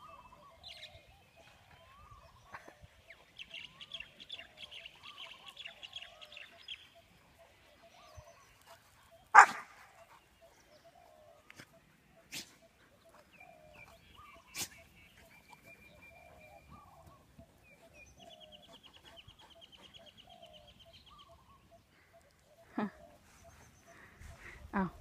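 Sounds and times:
birds chirping: 0:00.0 - 0:25.0
dog barking: 0:09.3 - 0:09.9.

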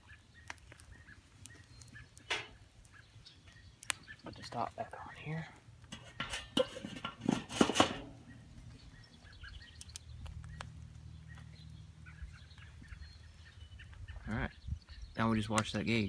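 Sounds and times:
metal clattering and clanking: 0:05.9 - 0:08.2.

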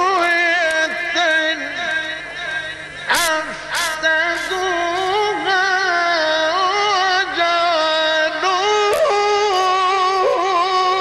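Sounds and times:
man chanting melismatically: 0:00.0 - 0:11.0.

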